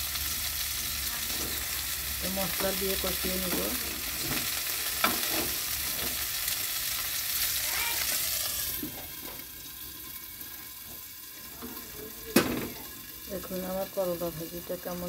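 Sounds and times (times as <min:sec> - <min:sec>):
fish sizzling in hot oil: 0:00.0 - 0:15.0.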